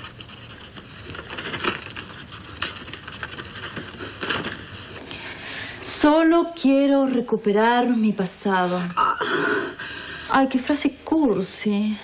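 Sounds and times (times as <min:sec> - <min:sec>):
pen scratching on notepad: 0:00.0 - 0:04.7.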